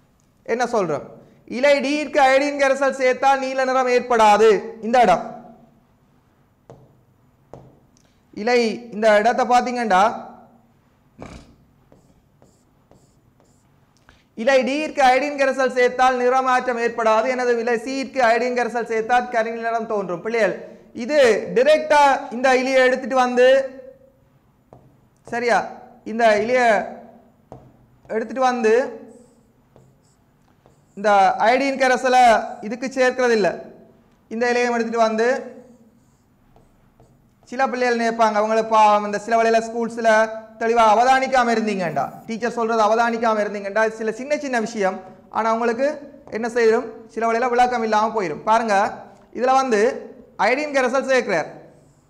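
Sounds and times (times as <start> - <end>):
stylus scratching drawing tablet: 11.2 - 13.7, 29.1 - 31.4, 36.0 - 37.6
man speaking: 25.3 - 27.0, 28.1 - 29.3, 30.7 - 33.7, 37.5 - 51.5.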